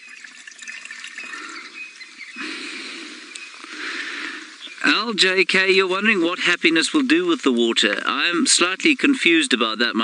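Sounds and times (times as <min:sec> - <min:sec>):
water pouring into plastic bottle: 0:00.0 - 0:02.2.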